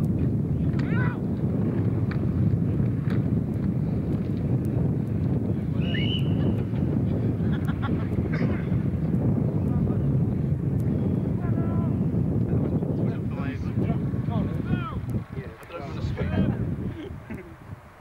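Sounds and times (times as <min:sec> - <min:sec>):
wind buffeting microphone: 0:00.0 - 0:18.0
distant shouts: 0:00.8 - 0:01.3, 0:05.8 - 0:06.5.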